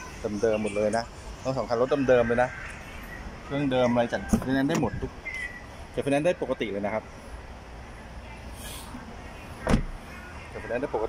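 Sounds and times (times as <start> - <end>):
car door shutting: 4.3 - 5.0, 9.6 - 10.0.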